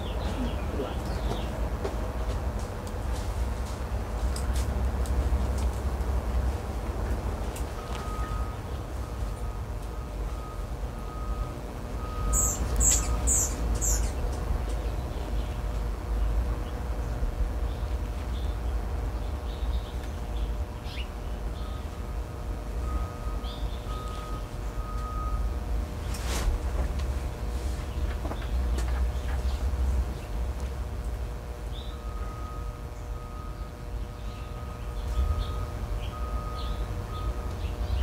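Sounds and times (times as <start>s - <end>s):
low outdoor rumble: 0.0s - 38.0s
small bird chirping: 12.3s - 14.3s.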